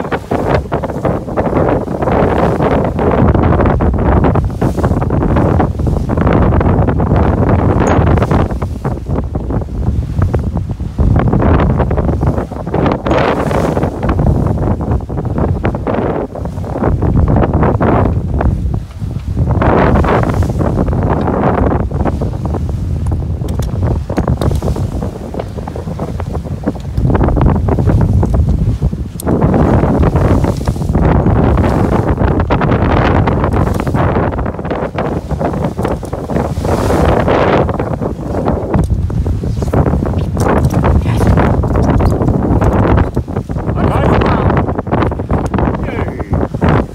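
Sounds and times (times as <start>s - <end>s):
water rushing along a hull: 0.0s - 46.9s
wind buffeting microphone: 0.0s - 46.9s.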